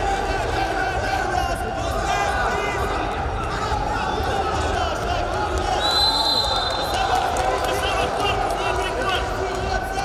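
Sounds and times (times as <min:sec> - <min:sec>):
crowd chatter and calls: 0:00.0 - 0:10.0.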